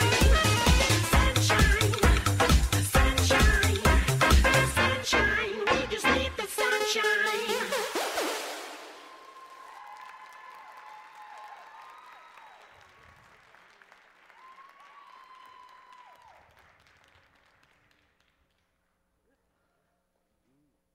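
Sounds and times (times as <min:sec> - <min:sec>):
high cheering calls: 0:08.8 - 0:12.9
audience applause: 0:08.8 - 0:18.5.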